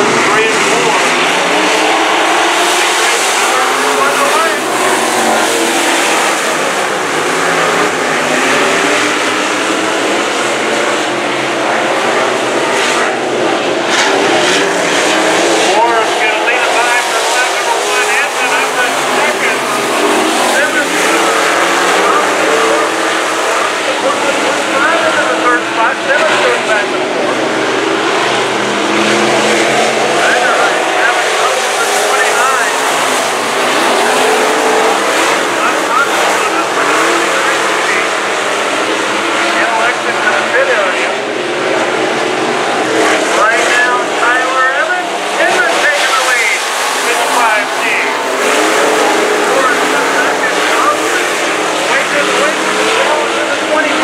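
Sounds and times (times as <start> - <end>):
race car engines: 0.0 - 54.0.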